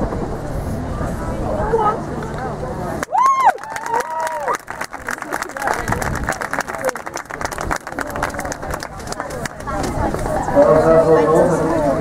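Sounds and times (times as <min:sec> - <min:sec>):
low outdoor rumble: 0:00.0 - 0:12.0
murmur of spectators: 0:00.0 - 0:12.0.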